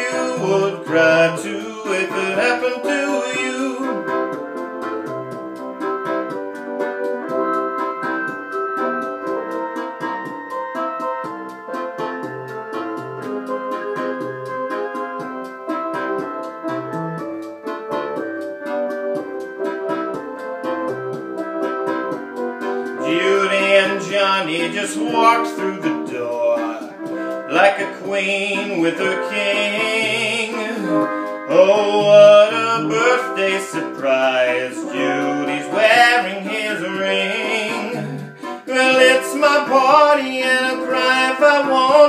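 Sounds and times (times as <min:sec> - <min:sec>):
bass line: 0:00.0 - 0:42.0
organ-like held chords: 0:00.0 - 0:42.0
ticking percussion: 0:00.0 - 0:42.0.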